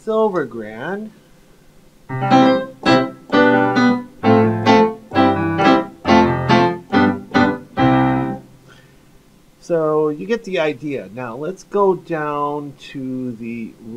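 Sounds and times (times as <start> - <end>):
piano chords: 2.1 - 8.6.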